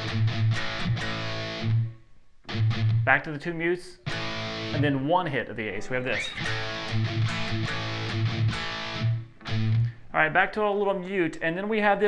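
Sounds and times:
distorted electric guitar chord: 0.0 - 1.9, 4.1 - 5.0, 6.2 - 9.9
palm-muted guitar hits: 6.2 - 10.0.

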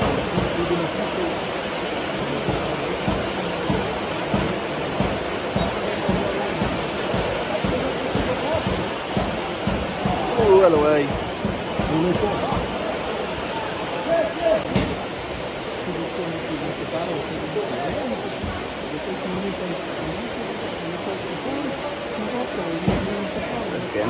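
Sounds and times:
heavy rain hissing: 0.0 - 24.0
spectators talking: 0.0 - 24.0.

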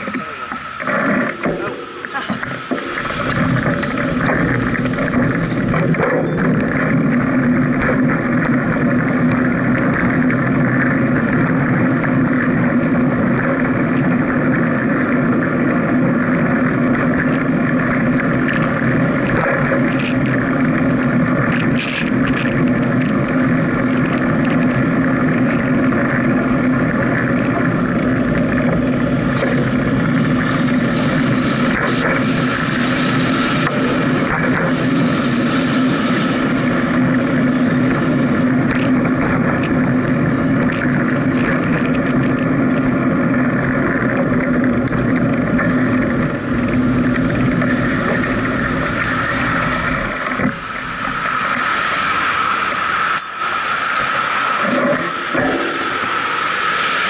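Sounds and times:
vehicle running noise: 0.0 - 57.0.

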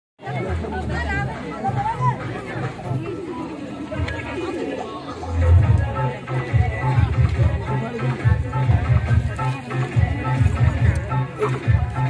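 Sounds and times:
crowd chatter: 0.2 - 12.0
music with bass beat: 5.4 - 12.0.

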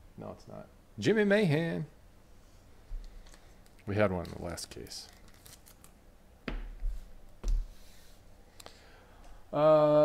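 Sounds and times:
card handling noise: 3.0 - 6.0.

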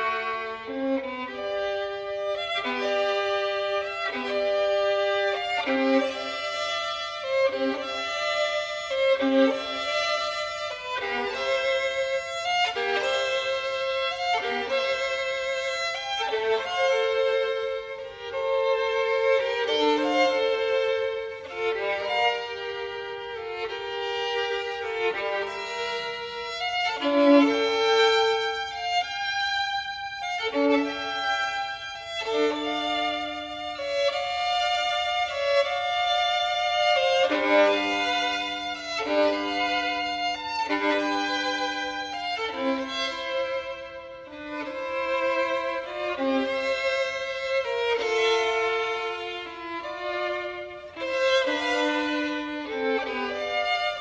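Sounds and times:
violin playing bowed notes: 0.0 - 54.0.

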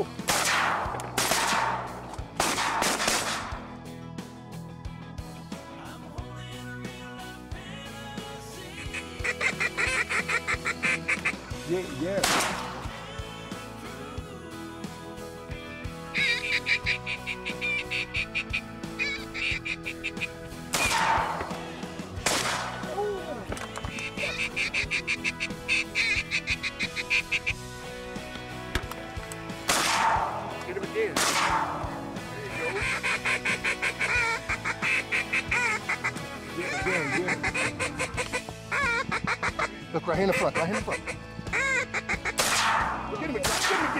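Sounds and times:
background music: 0.0 - 43.9
duck quacks: 8.8 - 11.5, 16.2 - 20.3, 23.9 - 27.6, 32.5 - 42.5.

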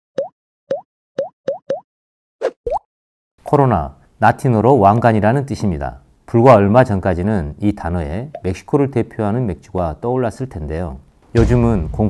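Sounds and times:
cartoon bloop pops: 0.2 - 1.8, 2.4 - 2.9.

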